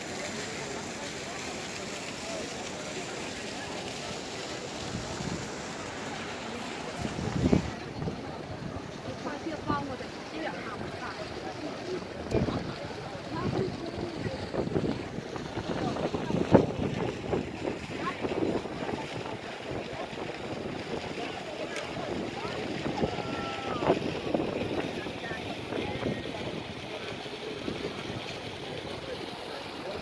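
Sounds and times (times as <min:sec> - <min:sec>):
crowd chatter: 0:00.0 - 0:30.0
wind rumbling on microphone: 0:04.7 - 0:10.0, 0:12.0 - 0:29.2.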